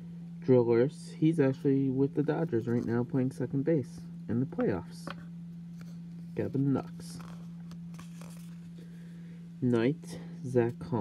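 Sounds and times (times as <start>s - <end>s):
low steady hum: 0.0s - 11.0s
cardboard cards sliding: 5.7s - 9.0s.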